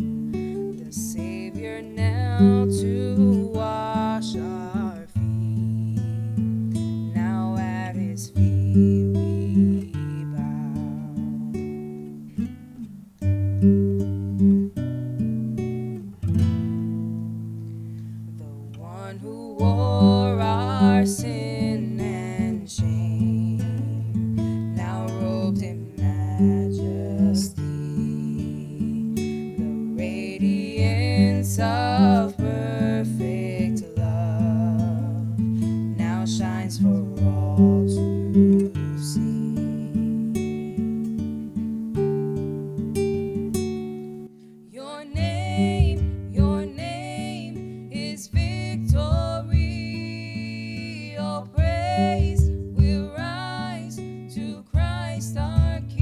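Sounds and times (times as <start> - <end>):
acoustic guitar strummed and picked: 0.0 - 56.0
women singing a worship song: 0.7 - 6.1, 7.2 - 11.2, 18.4 - 40.5, 44.7 - 56.0.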